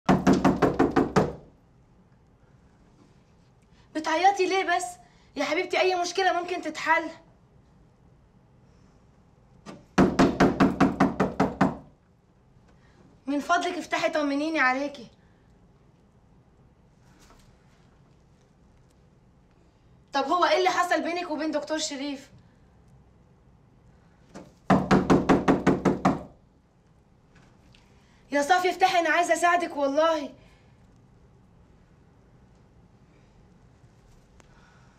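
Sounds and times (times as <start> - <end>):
fist knocking on door: 0.1 - 1.5, 9.7 - 11.9, 24.7 - 26.4.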